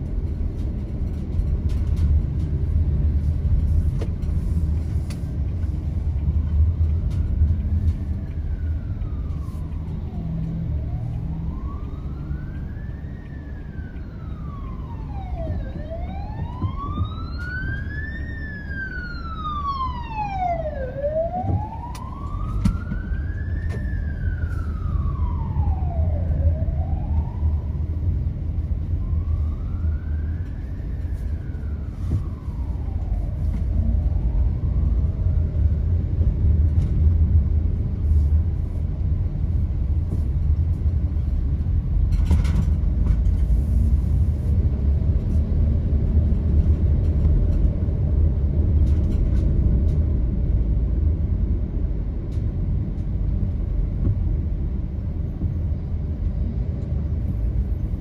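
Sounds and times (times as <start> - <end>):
traffic rumble: 0.0 - 58.0
wail siren: 7.2 - 36.2.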